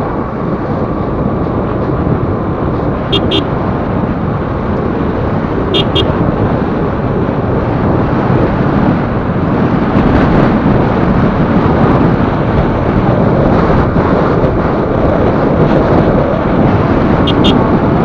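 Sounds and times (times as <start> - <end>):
motorcycle road noise: 0.0 - 18.0
wind buffeting microphone: 0.0 - 18.0.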